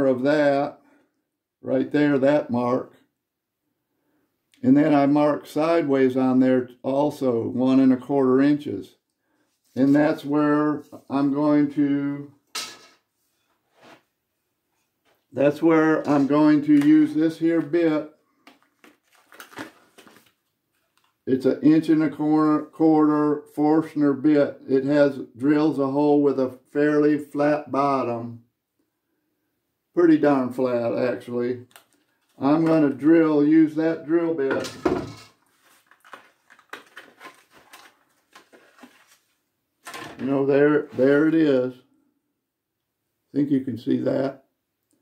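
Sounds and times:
plastic blister pack handling: 0:18.4 - 0:21.2, 0:31.7 - 0:32.8, 0:35.4 - 0:40.0.

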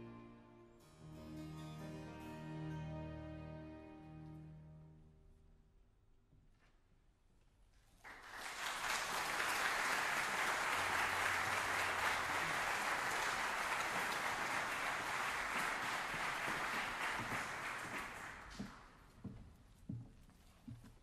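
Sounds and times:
audience applauding: 0:08.0 - 0:19.0.

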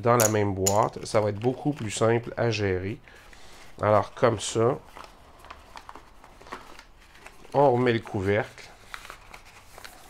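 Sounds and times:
paper rustling: 0:01.0 - 0:10.0.

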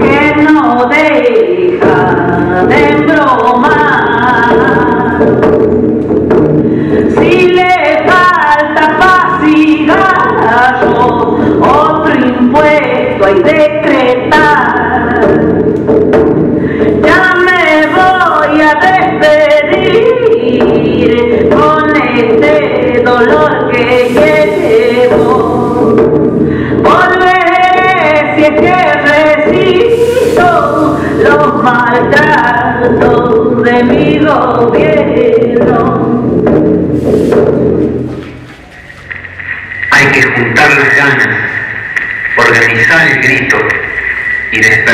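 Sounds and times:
music with singing: 0:00.0 - 0:40.2
unaccompanied group singing: 0:17.0 - 0:26.1, 0:26.8 - 0:36.3
steady high tone: 0:23.9 - 0:26.1.

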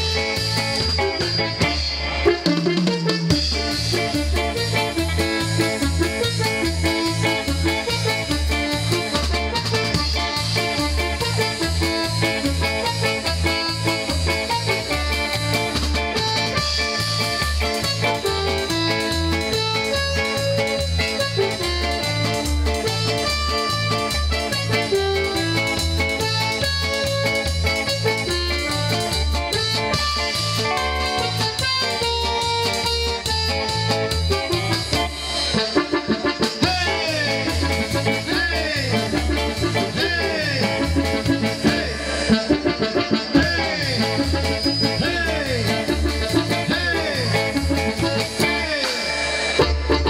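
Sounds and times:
live band playing: 0:00.0 - 0:50.0.

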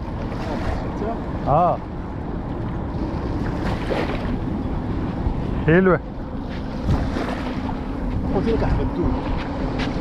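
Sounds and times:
small waves washing on shore: 0:00.0 - 0:01.8, 0:02.6 - 0:10.0
steady low hum: 0:00.0 - 0:10.0
wind buffeting microphone: 0:00.0 - 0:10.0.

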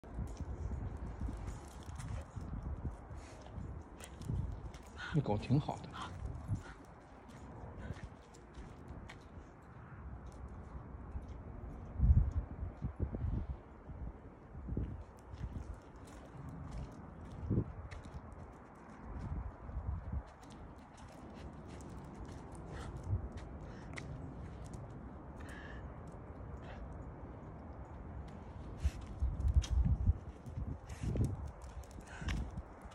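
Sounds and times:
dog's paws on asphalt: 0:00.0 - 0:32.9
footsteps on wet asphalt: 0:14.9 - 0:25.7.

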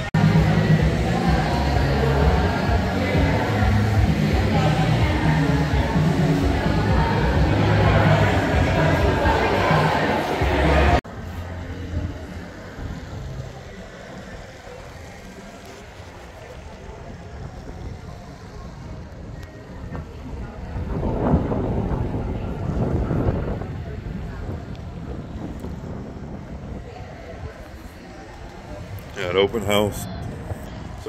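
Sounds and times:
voices: 0:00.0 - 0:31.0
wind rumbling on microphone: 0:00.0 - 0:31.0.

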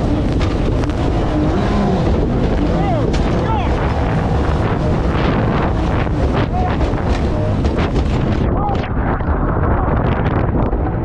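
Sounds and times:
rushing whitewater: 0:00.0 - 0:08.7
wind buffeting microphone: 0:00.0 - 0:11.0.

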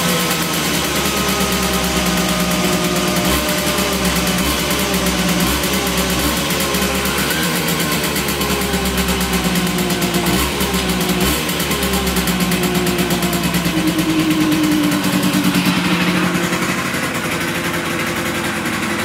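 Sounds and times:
two-stroke engine running: 0:00.0 - 0:19.0.

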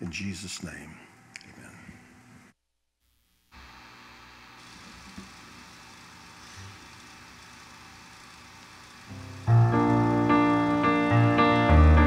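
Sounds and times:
keyboard playing piano chords: 0:09.1 - 0:12.0.

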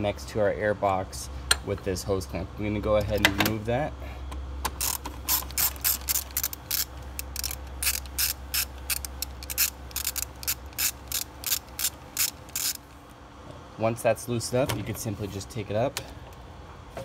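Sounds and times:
hand ratchet clicking: 0:04.8 - 0:12.8.

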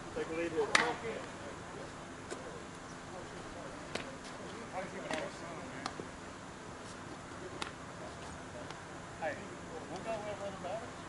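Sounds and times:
steady low hum: 0:00.0 - 0:11.0
distant talking: 0:00.1 - 0:11.0.

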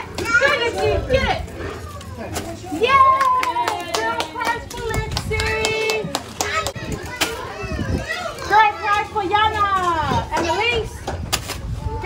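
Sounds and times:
people cheering and calling out: 0:00.0 - 0:09.6.

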